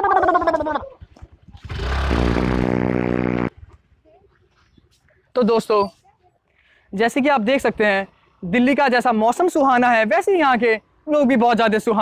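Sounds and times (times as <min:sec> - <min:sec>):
rough guttural vocal sound: 0:00.8 - 0:03.6.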